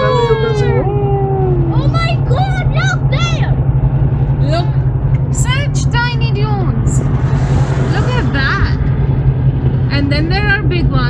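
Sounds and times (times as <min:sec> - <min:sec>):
high-pitched voices: 0:00.0 - 0:03.6
car driving interior drone: 0:00.0 - 0:11.0.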